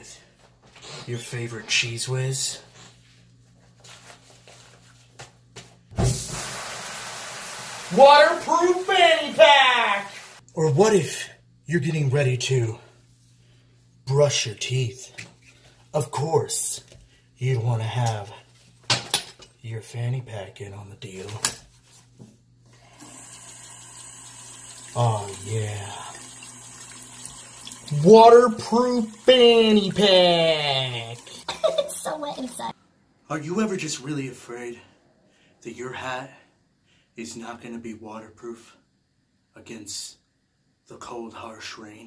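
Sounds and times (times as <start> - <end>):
shower spraying water: 6.0 - 10.4, 22.8 - 32.6.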